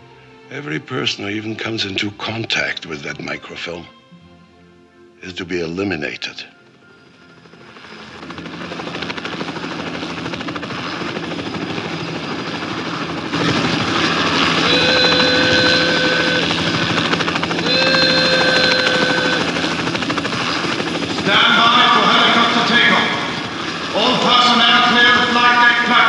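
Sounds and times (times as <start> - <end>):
helicopter engine and rotor: 5.7 - 26.0
long held tone: 13.4 - 21.1.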